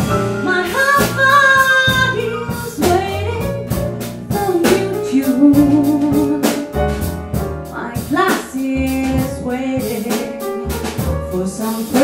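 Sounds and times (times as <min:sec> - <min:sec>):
double bass: 0:00.0 - 0:12.0
drum kit with cymbal strokes: 0:00.0 - 0:12.0
piano: 0:00.0 - 0:12.0
woman singing jazz: 0:00.0 - 0:12.0.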